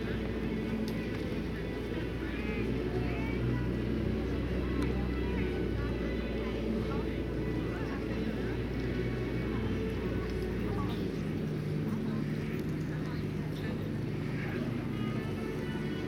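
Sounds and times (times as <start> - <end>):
faint indistinct voices: 0.0 - 16.0
low background hum: 0.0 - 16.0.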